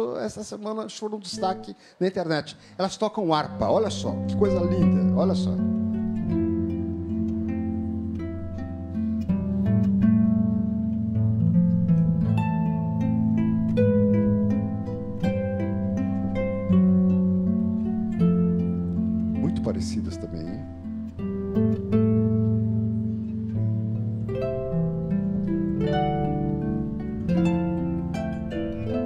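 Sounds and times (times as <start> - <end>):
harps playing: 1.2 - 1.8, 2.6 - 29.0.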